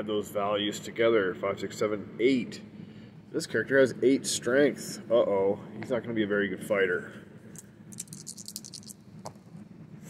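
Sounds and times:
dice clicking while shaken: 0:07.9 - 0:09.0
dice tapping: 0:07.9 - 0:09.0.

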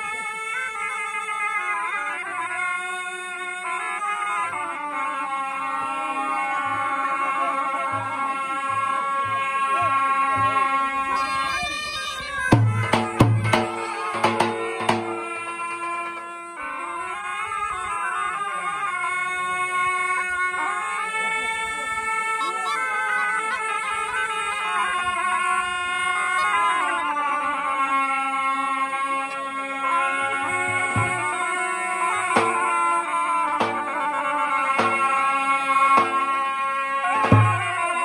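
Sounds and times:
shawms playing folk melody: 0:00.0 - 0:18.4, 0:20.2 - 0:38.0
bass drum strikes: 0:30.8 - 0:31.4, 0:33.6 - 0:34.1, 0:34.8 - 0:35.2, 0:37.3 - 0:37.7.

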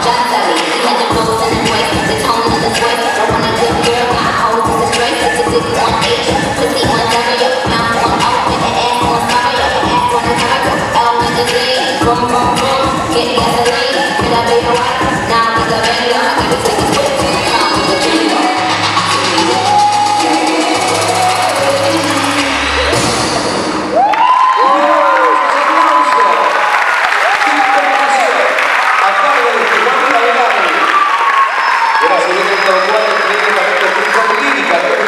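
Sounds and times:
hip hop track with heavy bass: 0:00.0 - 0:24.0
audience cheering and whooping: 0:19.0 - 0:35.0
audience applauding: 0:23.9 - 0:35.0.

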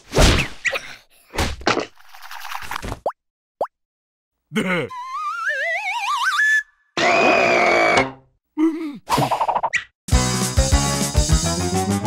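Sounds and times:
short cartoon vocal noises: 0:04.5 - 0:05.2
cartoon whistle rising in pitch: 0:04.9 - 0:08.0.

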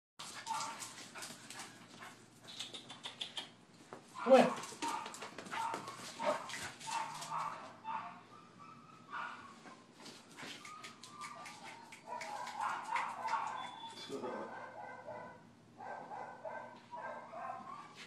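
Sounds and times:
dog whining and barking: 0:07.0 - 0:09.9, 0:10.6 - 0:15.3, 0:15.9 - 0:18.0.

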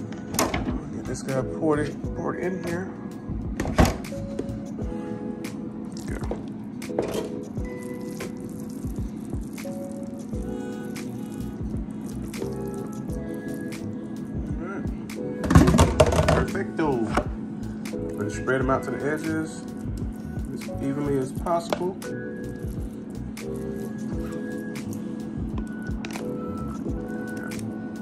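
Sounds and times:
background music: 0:00.0 - 0:28.0.

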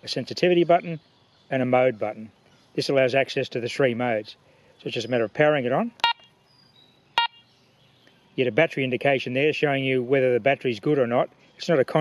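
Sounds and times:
metal detector beeps: 0:06.0 - 0:06.3, 0:07.2 - 0:07.4.

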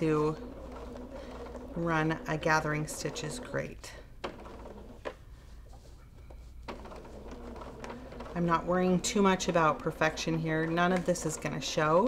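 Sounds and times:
sewing machine running: 0:00.0 - 0:05.1, 0:06.7 - 0:12.0
sewing machine clicks: 0:00.1 - 0:05.1, 0:06.7 - 0:12.0.

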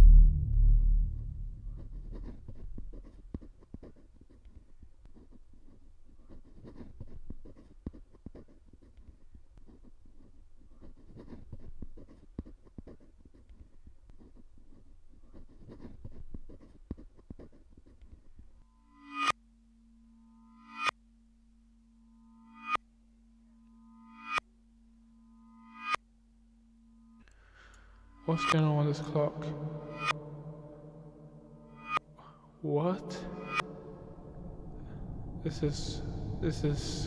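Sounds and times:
low steady drone: 0:00.0 - 0:02.7, 0:28.1 - 0:37.0
low rumble: 0:00.0 - 0:03.0, 0:33.2 - 0:37.0
scratchy rustling: 0:01.6 - 0:18.6
reversed ringing swell: 0:33.1 - 0:37.0.

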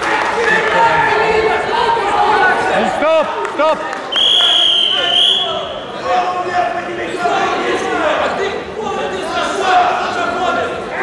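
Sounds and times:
referee whistle blast: 0:04.1 - 0:05.8.

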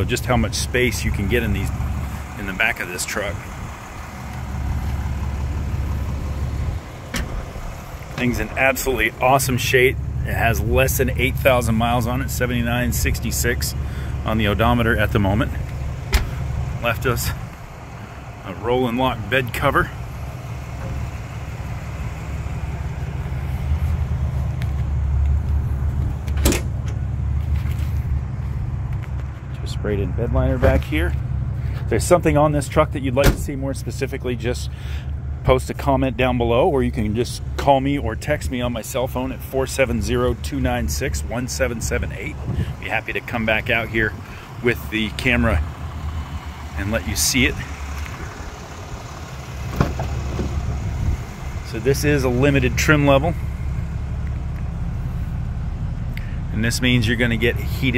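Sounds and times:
steady low rumble: 0:00.0 - 0:57.9
car door pulled open: 0:07.0 - 0:08.9, 0:26.2 - 0:27.0, 0:49.7 - 0:50.6.

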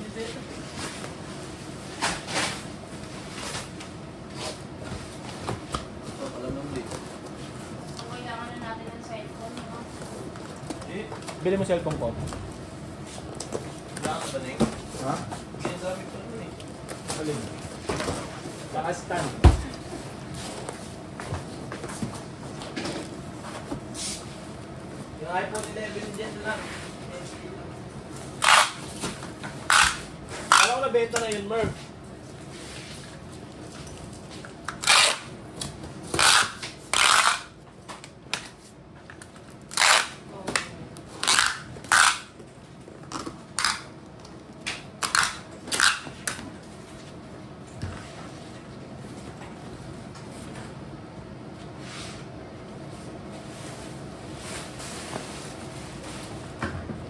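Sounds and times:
packing tape screeching off dispenser: 0:28.4 - 0:28.9, 0:29.7 - 0:30.8, 0:34.8 - 0:35.3, 0:36.1 - 0:37.5, 0:39.7 - 0:40.2, 0:41.2 - 0:42.3, 0:45.0 - 0:46.1.

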